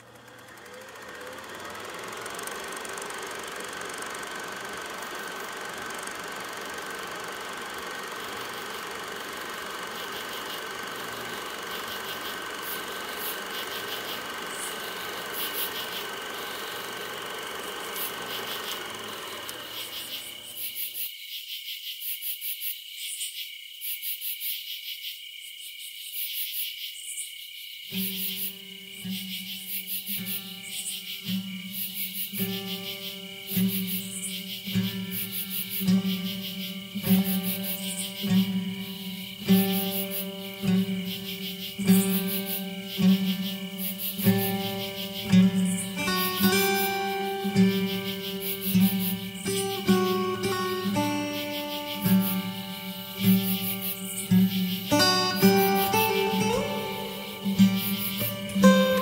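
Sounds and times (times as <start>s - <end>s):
mechanical running noise: 0.0s - 21.1s, 28.0s - 59.0s
thin steady whine: 0.0s - 21.1s, 28.0s - 59.0s
insects chirping: 0.0s - 59.0s
solo guitar music: 32.4s - 59.0s.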